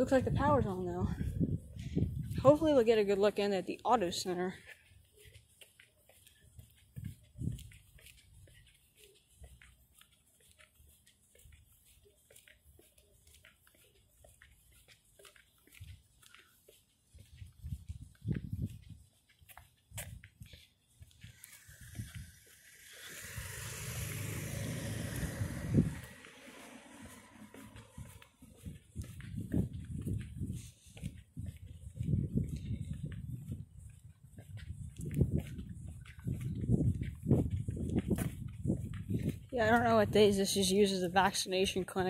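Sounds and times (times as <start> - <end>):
wind on microphone: 0.0 - 2.8, 6.9 - 8.4, 17.2 - 19.2, 19.9 - 40.5
broad rush of noise: 21.3 - 28.3.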